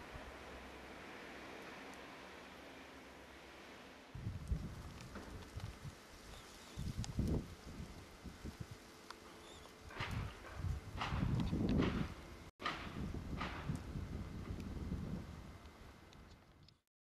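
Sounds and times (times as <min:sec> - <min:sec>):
wind buffeting microphone: 0:04.2 - 0:08.8, 0:09.8 - 0:16.3.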